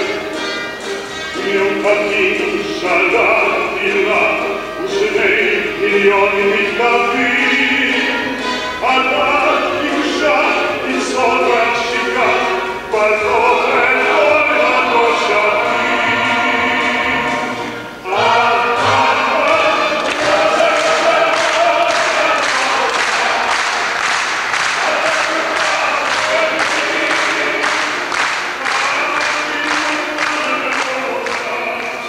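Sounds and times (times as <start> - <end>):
choir singing: 0.0 - 32.0
audience clapping along: 18.1 - 32.0.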